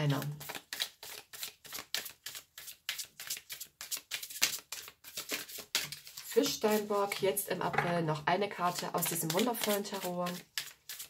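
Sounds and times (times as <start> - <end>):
cards being shuffled: 0.2 - 7.4, 8.6 - 11.0.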